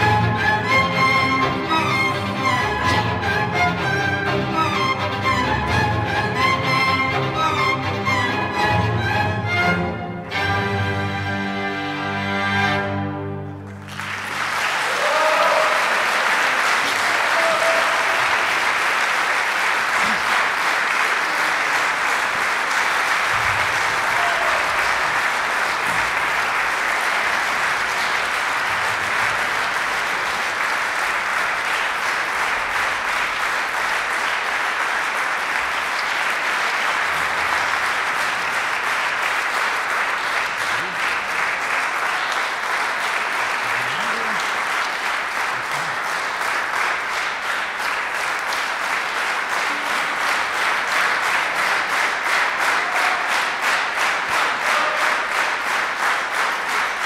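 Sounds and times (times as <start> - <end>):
audience applauding: 13.5 - 57.0.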